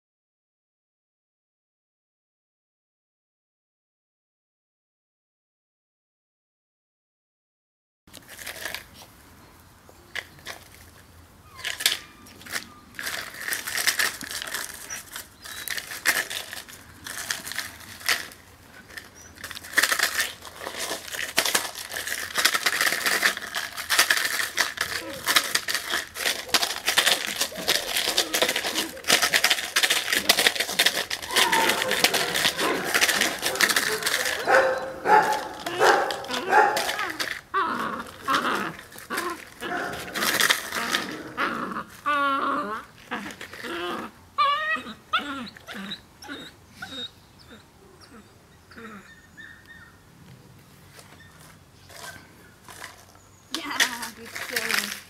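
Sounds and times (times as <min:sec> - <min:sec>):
plastic bottle crinkling: 0:08.1 - 0:09.1, 0:10.1 - 0:44.1, 0:50.9 - 0:55.0
puppy vocalizing: 0:24.2 - 0:50.0.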